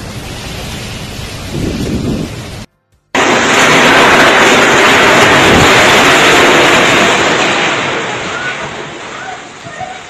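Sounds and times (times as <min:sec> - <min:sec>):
heavy rain: 0:00.0 - 0:10.0
strong wind: 0:00.0 - 0:10.0.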